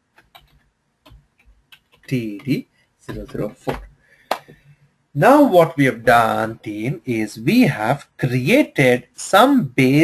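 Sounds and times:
keyboard keys clicking: 0:00.1 - 0:04.5.

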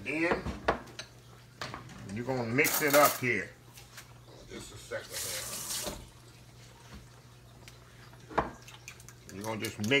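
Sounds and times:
running water: 0:01.2 - 0:10.0.

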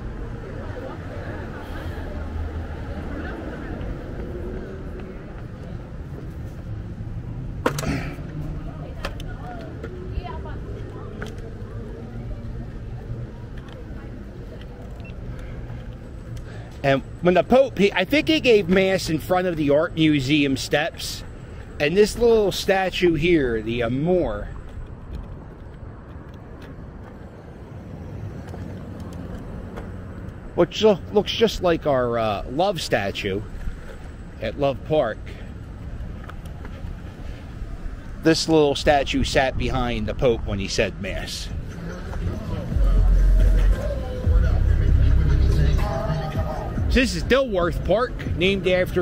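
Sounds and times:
wind: 0:00.0 - 0:49.0
scooter wheels rumbling on pavement: 0:21.8 - 0:38.3.

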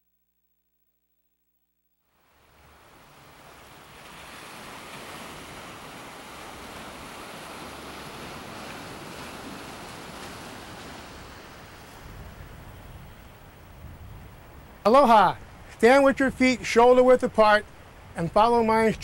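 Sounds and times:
surf washing against rocks: 0:02.4 - 0:13.8
wind rumble on microphone: 0:02.6 - 0:16.5.

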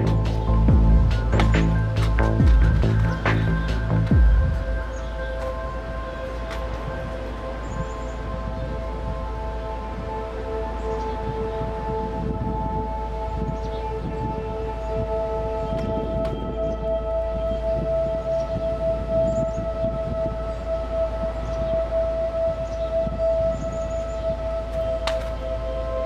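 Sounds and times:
ambient music held tones: 0:00.0 - 0:26.0
low hum: 0:00.0 - 0:26.0.

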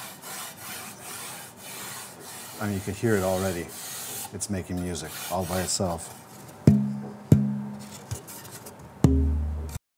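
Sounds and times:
tapping wooden guitar plate: 0:06.7 - 0:07.9, 0:09.0 - 0:09.8.

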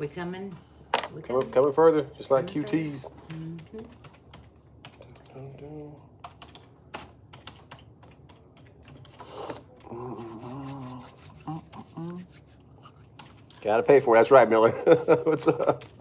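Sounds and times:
typing on computer keyboard: 0:03.2 - 0:05.4, 0:06.2 - 0:10.0.

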